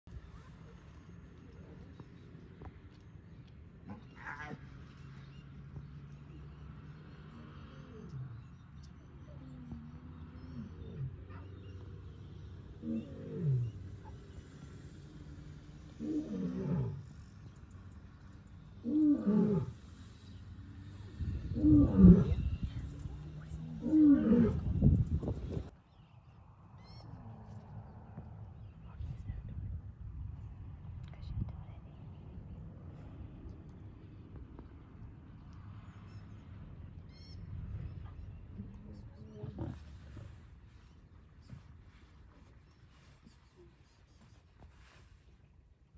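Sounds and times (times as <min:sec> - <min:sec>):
lion calling: 0:03.8 - 0:04.8, 0:21.5 - 0:22.6
lion grunting: 0:12.8 - 0:14.2, 0:21.2 - 0:22.6.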